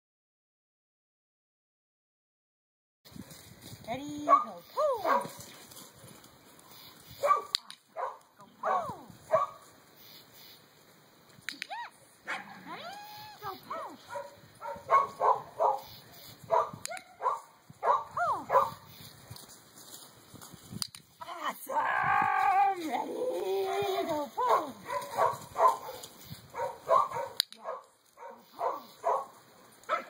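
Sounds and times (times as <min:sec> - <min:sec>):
dog barking and whining: 0:04.3 - 0:05.4, 0:07.2 - 0:09.6, 0:11.7 - 0:15.9, 0:16.5 - 0:18.8, 0:23.6 - 0:29.3.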